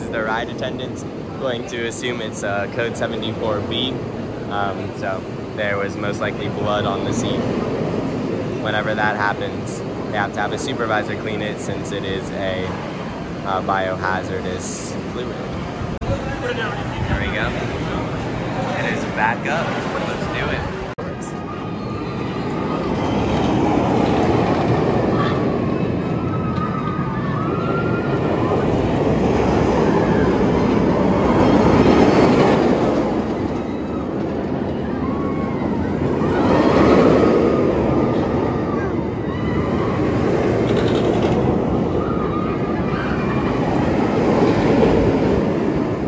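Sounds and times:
roller coaster rumbling on track: 0.0 - 46.0.

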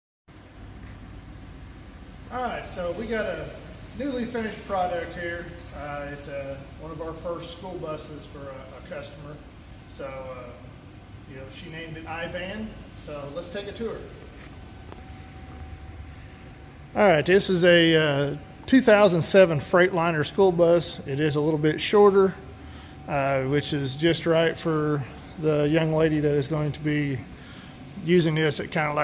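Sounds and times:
room noise hum and hiss: 0.3 - 29.0.

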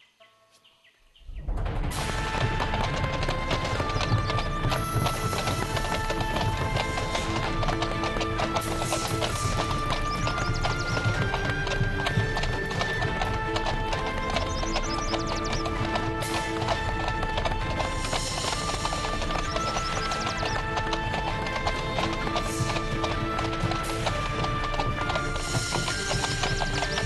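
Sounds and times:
horse hooves clip-clopping on dirt: 1.2 - 27.0.

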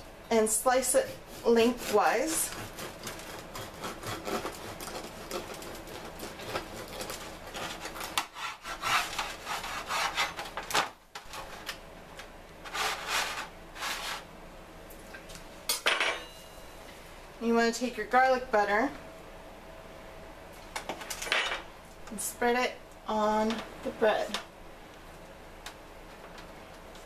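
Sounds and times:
knife sawing through crusty bread: 0.8 - 10.4, 12.7 - 14.2.

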